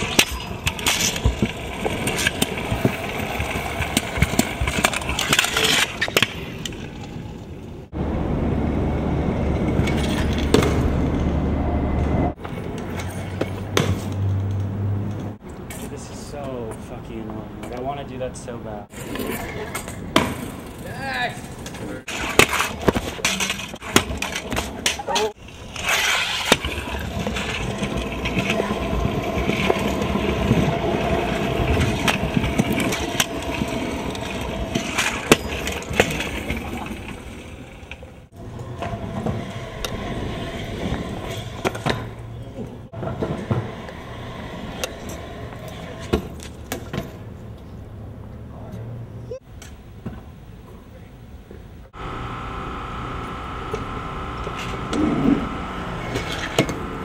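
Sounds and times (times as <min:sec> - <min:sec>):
constant high whine: 0:00.0 - 0:57.0
scooter wheels rolling on concrete: 0:00.0 - 0:57.0
low outdoor rumble: 0:06.8 - 0:18.9.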